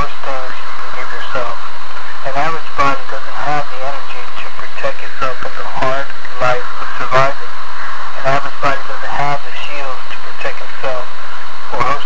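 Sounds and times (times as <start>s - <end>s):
person talking loudly: 2.2s - 7.4s, 8.2s - 11.1s, 11.7s - 12.0s.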